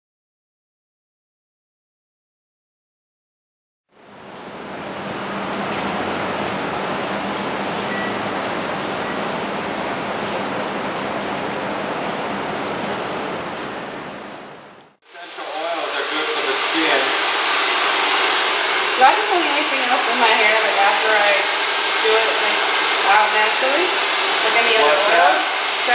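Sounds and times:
steady rushing noise: 0:03.9 - 0:25.9
voices: 0:15.2 - 0:17.2, 0:19.0 - 0:25.9
hair dryer blowing: 0:15.2 - 0:25.9.

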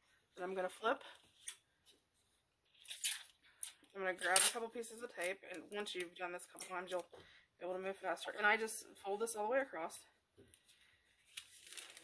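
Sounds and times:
tissue paper rustling: 0:11.2 - 0:12.0.

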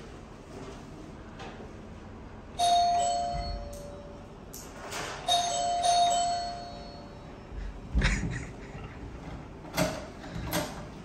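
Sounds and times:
two-note doorbell chime: 0:02.6 - 0:04.2, 0:05.3 - 0:07.4.

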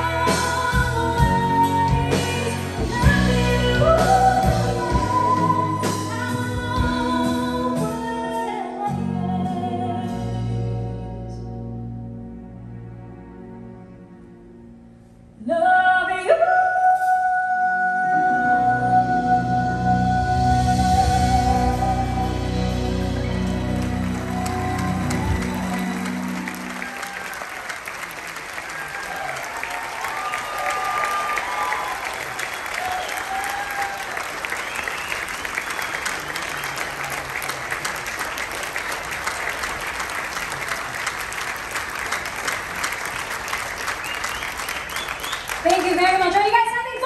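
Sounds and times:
audience applauding and cheering: 0:20.9 - 0:47.0.

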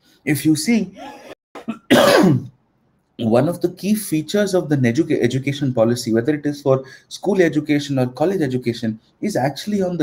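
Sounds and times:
man coughing: 0:01.0 - 0:02.5.

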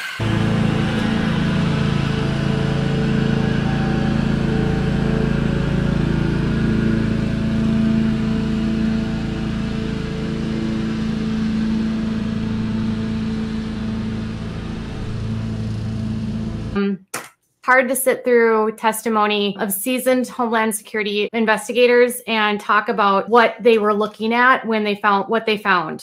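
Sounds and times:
vehicle engine running: 0:00.0 - 0:16.8.

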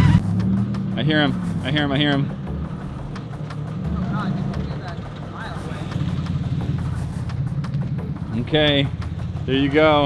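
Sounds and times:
car engine rumbling loudly: 0:00.0 - 0:10.0.

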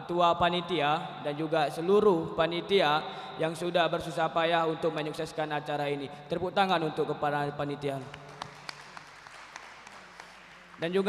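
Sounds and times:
audience applauding: 0:08.1 - 0:11.0.

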